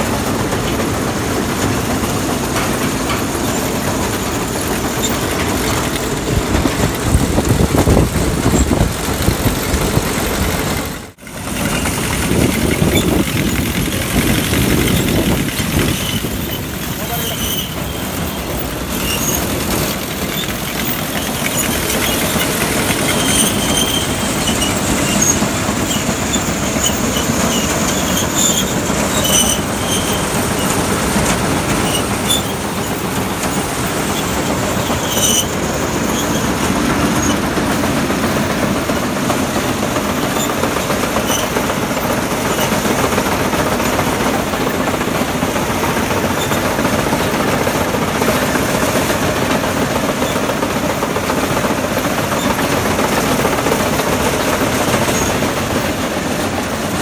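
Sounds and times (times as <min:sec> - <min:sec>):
straw reaper mechanical clatter: 0:00.0 - 0:57.0.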